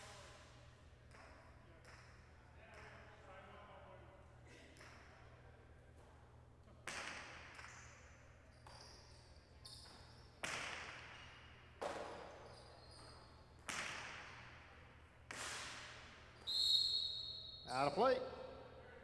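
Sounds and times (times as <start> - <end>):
shoe squeaks: 7.6 - 10.4, 12.2 - 13.6, 16.4 - 18.0
ball cracking against walls: 13.6 - 14.6.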